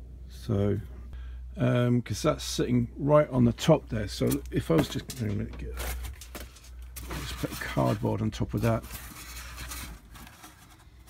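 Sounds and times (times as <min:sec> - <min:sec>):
cardboard scraping foam: 0:04.2 - 0:11.0.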